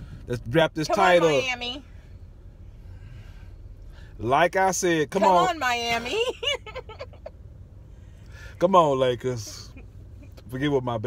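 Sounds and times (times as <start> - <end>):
car cabin rumble: 0.0 - 11.0.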